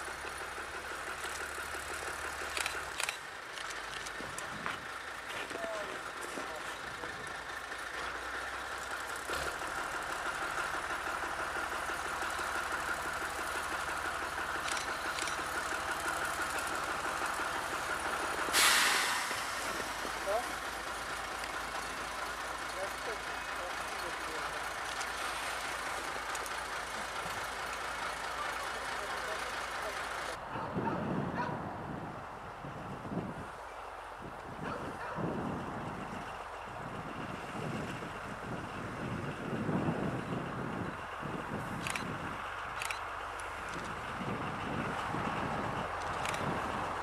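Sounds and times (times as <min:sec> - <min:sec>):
diesel locomotive running slowly: 0:00.0 - 0:47.0
loud burst of hissing air: 0:18.4 - 0:20.1.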